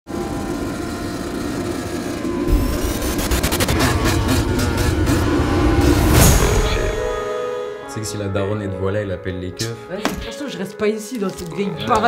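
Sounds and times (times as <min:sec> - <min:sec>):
dirt bike engine running: 0:00.2 - 0:06.4.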